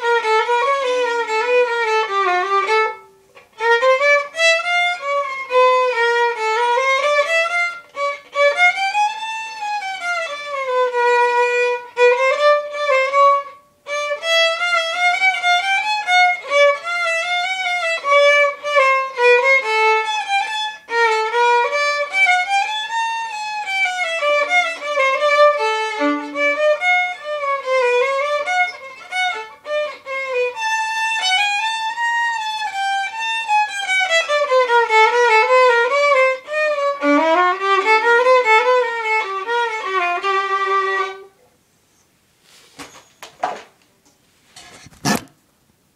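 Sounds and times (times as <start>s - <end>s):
solo violin playing: 0.0s - 41.4s.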